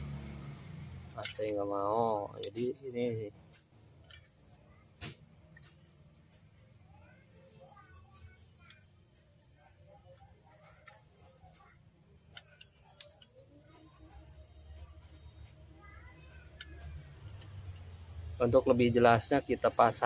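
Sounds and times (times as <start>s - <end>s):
faint distant voices: 1.1s - 20.0s.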